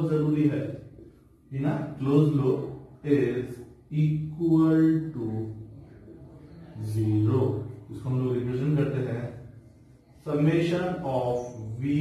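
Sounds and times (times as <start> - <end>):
man speaking slowly: 0.0 - 9.6, 10.2 - 12.0.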